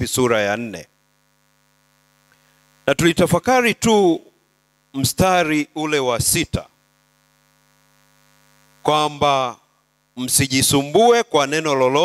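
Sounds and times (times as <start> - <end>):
man speaking: 0.0 - 0.9, 2.9 - 4.3, 4.9 - 6.8, 8.8 - 9.6, 10.2 - 12.0
faint electrical mains hum: 0.0 - 12.0.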